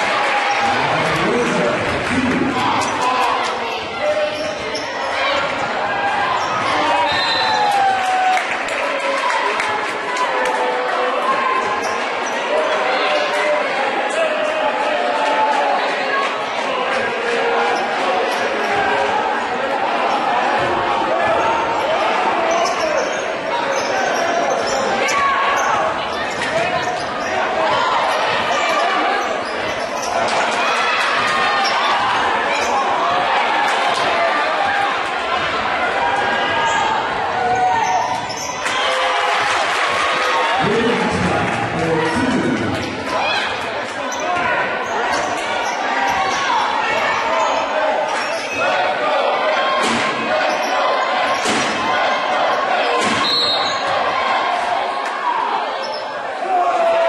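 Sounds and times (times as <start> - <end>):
crowd and players shouting: 0.0 - 57.0
echoing overlapping voices: 0.0 - 57.0.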